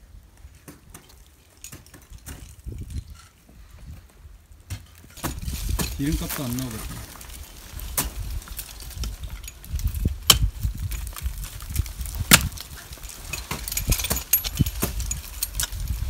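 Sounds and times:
ice axe knocking into ice: 0:10.2 - 0:10.6, 0:12.2 - 0:12.6
low rumble: 0:15.6 - 0:16.0.

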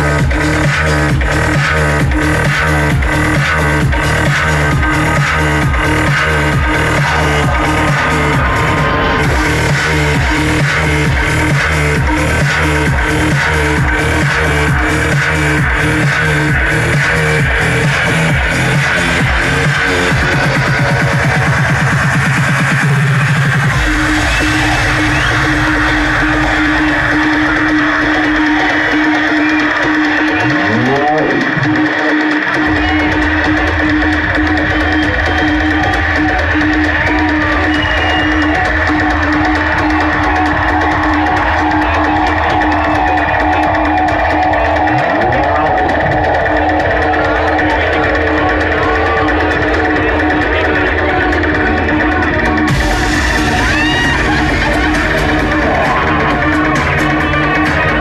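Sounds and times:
electronic dance music beat: 0:00.0 - 0:58.0.

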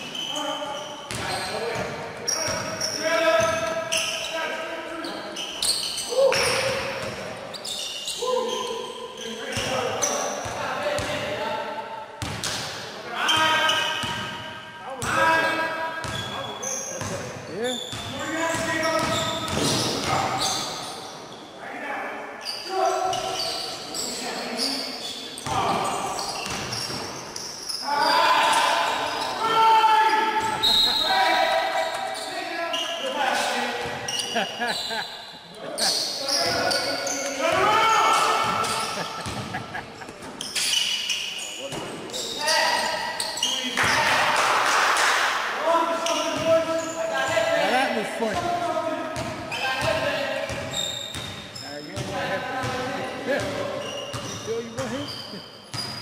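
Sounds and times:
basketball bouncing in echoing hall: 0:00.0 - 0:04.4, 0:05.1 - 0:21.4, 0:25.0 - 0:32.3, 0:33.3 - 0:35.1, 0:35.8 - 0:44.6, 0:45.9 - 0:56.0
players shouting: 0:27.8 - 0:32.2, 0:36.3 - 0:39.3.

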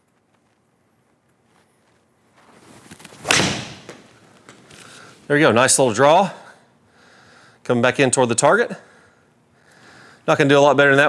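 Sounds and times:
golf club swish: 0:02.5 - 0:04.2
golf club smacking ball: 0:03.2 - 0:04.2.

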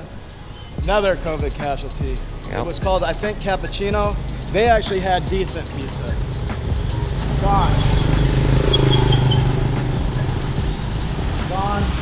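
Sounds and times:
street traffic: 0:00.0 - 0:12.0
vehicle engine humming: 0:00.8 - 0:12.0.

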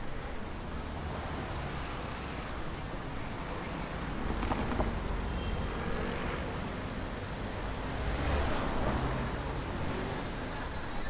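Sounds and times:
cars driving past: 0:00.6 - 0:11.0.

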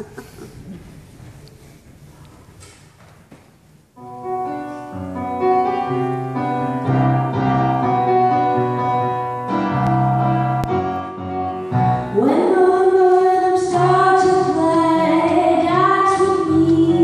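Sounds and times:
electronic keyboard piano chords: 0:04.0 - 0:17.0.

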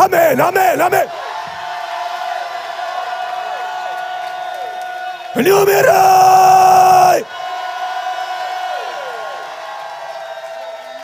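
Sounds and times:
congregation crying out in prayer: 0:05.3 - 0:07.3.

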